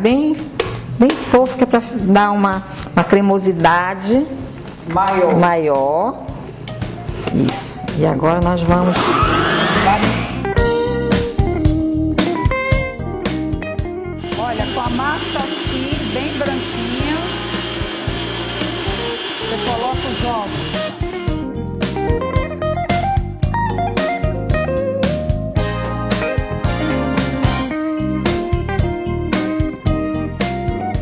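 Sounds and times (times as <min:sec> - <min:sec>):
electric stand mixer running: 0:08.8 - 0:10.4, 0:14.2 - 0:21.4
guitar music: 0:09.8 - 0:29.8.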